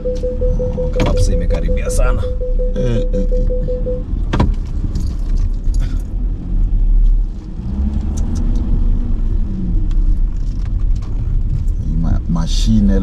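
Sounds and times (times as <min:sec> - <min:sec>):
car engine and tyre rumble: 0:00.0 - 0:13.0.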